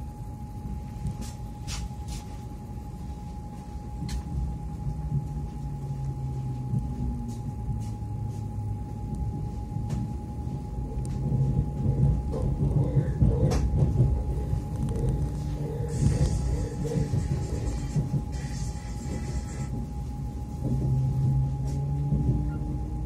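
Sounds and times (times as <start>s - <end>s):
low hum of running gear: 0.0s - 23.0s
train low rumble: 0.0s - 23.0s.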